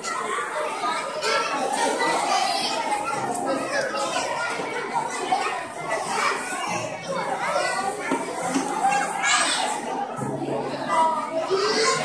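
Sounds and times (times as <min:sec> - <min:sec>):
young children chattering: 0:00.0 - 0:12.0.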